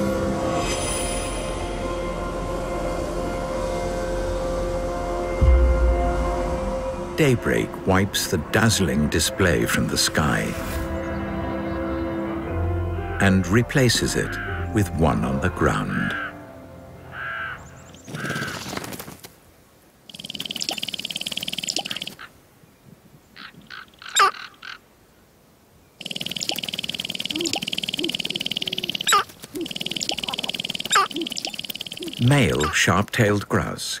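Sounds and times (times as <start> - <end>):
grouse calling: 17.1 - 18.9, 20.1 - 22.3, 23.4 - 24.8, 26.0 - 32.8.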